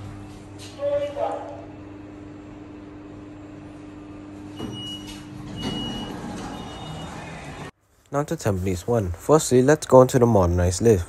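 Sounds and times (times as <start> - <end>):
lift hum: 1.8 - 7.8
lift doors sliding open: 4.6 - 7.7.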